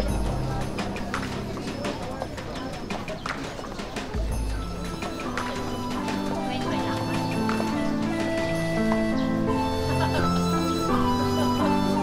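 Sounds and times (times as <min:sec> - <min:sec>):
footsteps clicking on paving: 0:00.0 - 0:12.0
many voices talking: 0:00.0 - 0:12.0.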